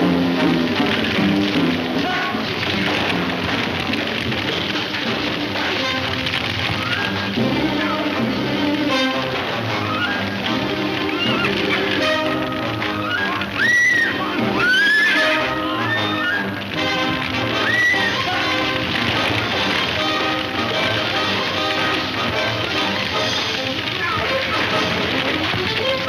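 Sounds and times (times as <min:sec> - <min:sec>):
film score music: 0:00.0 - 0:26.0
horses whinnying: 0:06.3 - 0:26.0.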